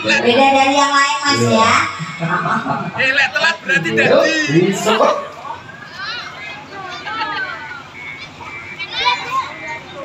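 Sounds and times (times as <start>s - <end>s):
young voices chattering and calling: 0.0s - 10.0s.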